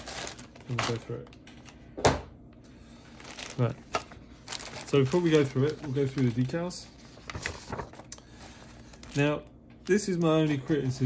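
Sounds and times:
paper rustling: 0:03.1 - 0:11.0.

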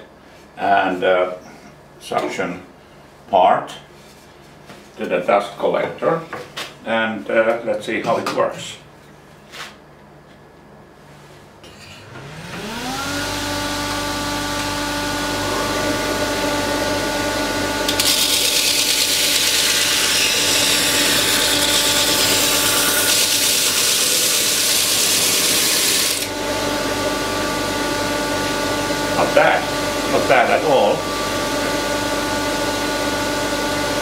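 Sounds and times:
disc sander motor humming: 0:12.1 - 0:29.2
sanding disc hissing on wood: 0:18.0 - 0:26.3.

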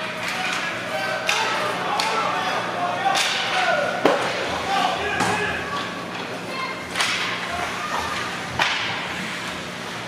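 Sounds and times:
hockey sticks and puck cracking: 0:00.1 - 0:02.3, 0:03.0 - 0:09.6.

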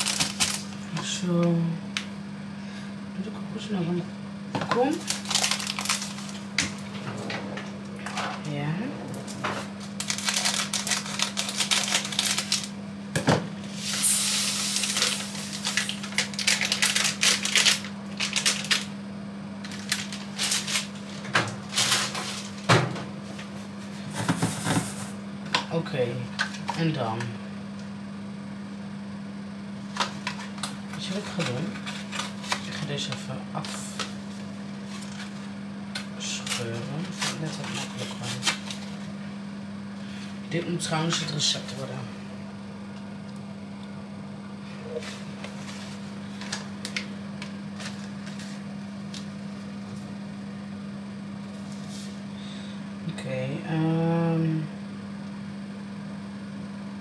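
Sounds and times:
food packaging crinkling and tearing: 0:00.0 - 0:00.8, 0:05.0 - 0:06.5, 0:09.7 - 0:12.8, 0:14.3 - 0:19.0, 0:19.6 - 0:22.7, 0:36.4 - 0:39.1, 0:47.7 - 0:49.3
low hum: 0:05.1 - 0:12.6.

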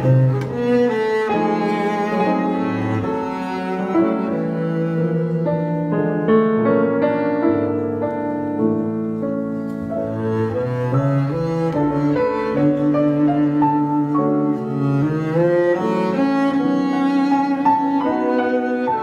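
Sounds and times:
bowed double bass melody: 0:00.0 - 0:19.0
piano accompaniment: 0:00.0 - 0:19.0.

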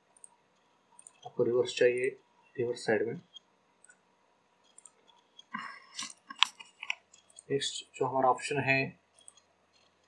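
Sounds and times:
computer mouse clicks: 0:00.1 - 0:01.4, 0:03.3 - 0:04.0, 0:04.6 - 0:07.5, 0:09.2 - 0:10.0.

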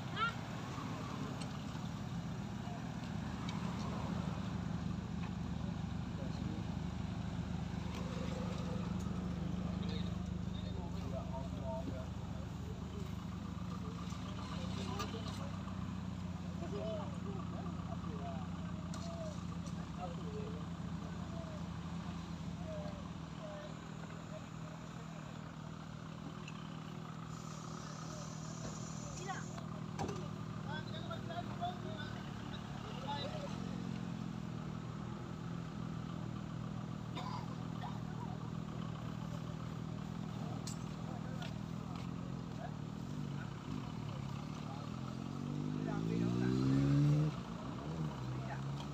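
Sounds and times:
vehicle engine idling: 0:00.0 - 0:48.9.

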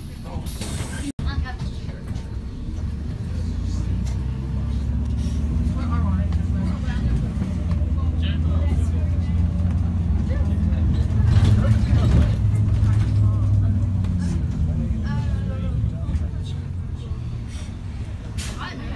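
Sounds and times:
bus engine humming: 0:00.0 - 0:18.9.

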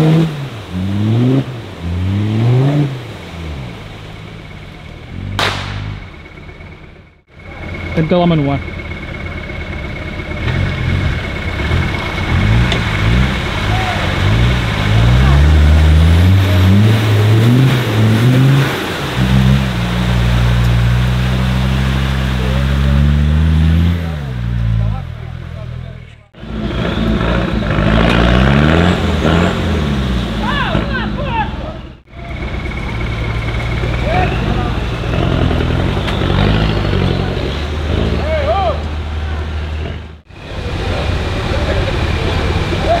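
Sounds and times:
pickup engine revving through water: 0:00.0 - 0:06.2, 0:10.1 - 0:43.0
off-road vehicle engine revving: 0:00.0 - 0:43.0.

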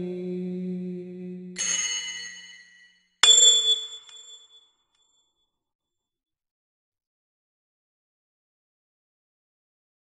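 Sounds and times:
bell-like metallic strike: 0:01.6 - 0:04.6.

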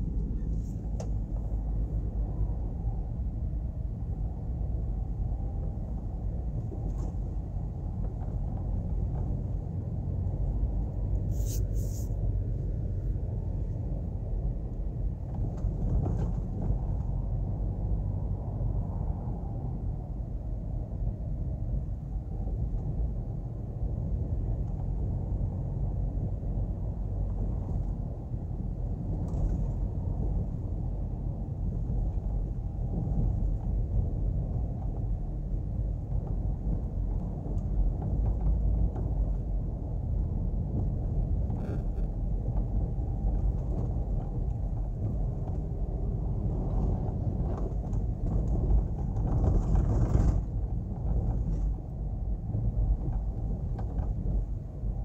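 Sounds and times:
car road and engine rumble: 0:00.0 - 0:55.0.

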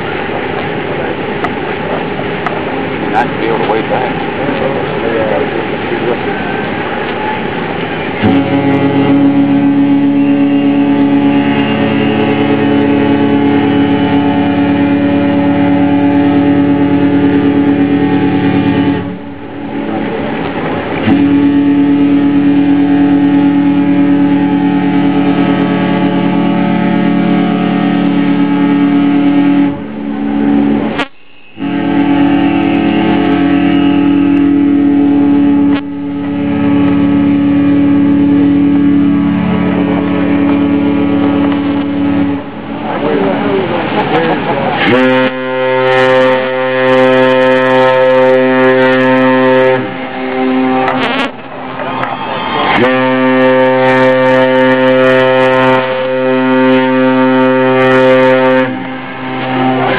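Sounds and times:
ships' horns blasting: 0:00.0 - 0:59.9.

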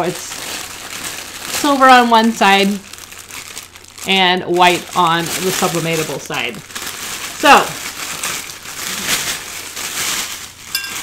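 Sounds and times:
rustling and crinkling: 0:00.0 - 0:11.0.

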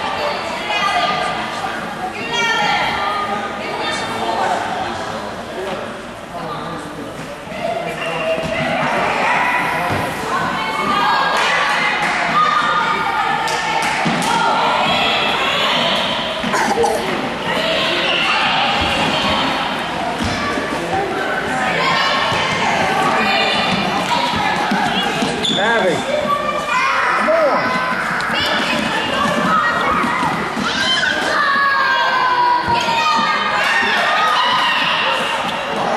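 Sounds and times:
children chattering and calling: 0:00.0 - 0:05.2, 0:07.5 - 0:35.9.

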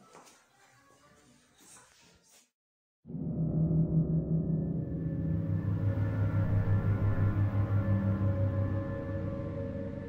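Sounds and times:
pulsing low drone: 0:03.1 - 0:10.0.

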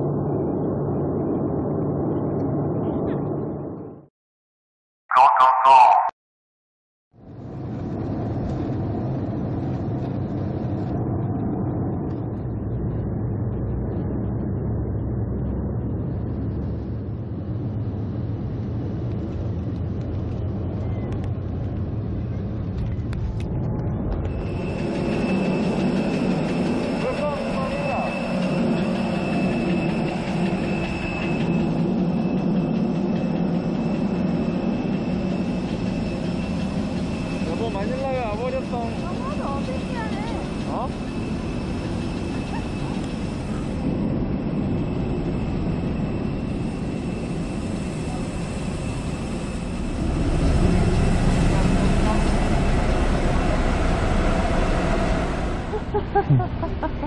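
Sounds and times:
high engine whine: 0:07.2 - 0:57.0
airliner cabin engine rumble: 0:07.3 - 0:57.0.

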